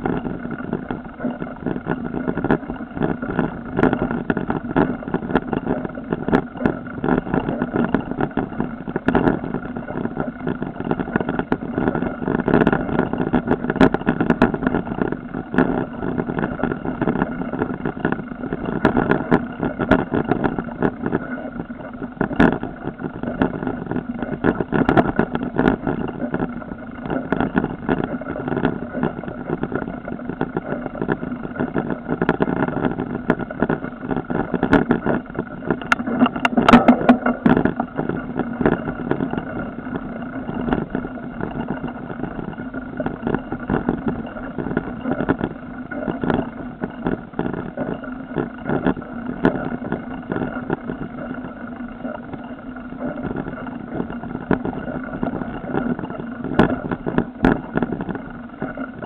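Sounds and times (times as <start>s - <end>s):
camera rattling on bike: 0.0s - 59.0s.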